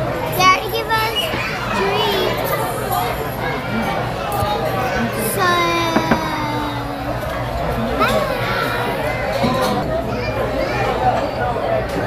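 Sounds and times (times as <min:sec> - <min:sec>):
young child's high-pitched voice: 0:05.1 - 0:07.2.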